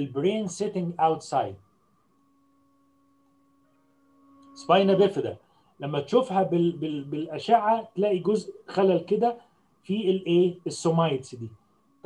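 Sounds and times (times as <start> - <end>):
faint steady tonal hum: 0.0 - 12.0.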